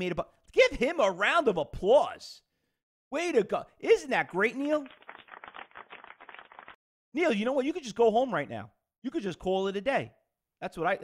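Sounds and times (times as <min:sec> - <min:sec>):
applause: 0:04.8 - 0:06.8.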